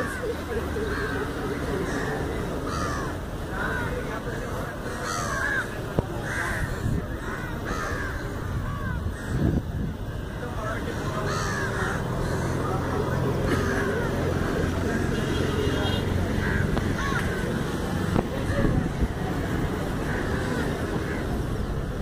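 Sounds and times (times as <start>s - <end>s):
crows cawing: 0.0s - 4.1s, 4.8s - 10.0s, 10.9s - 15.4s, 16.4s - 18.6s, 20.0s - 21.3s
outdoor background noise: 0.0s - 22.0s.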